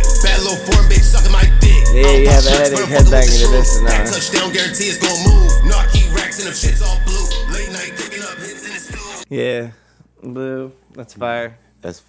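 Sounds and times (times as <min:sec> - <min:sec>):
rapping over a beat: 0:00.0 - 0:09.3.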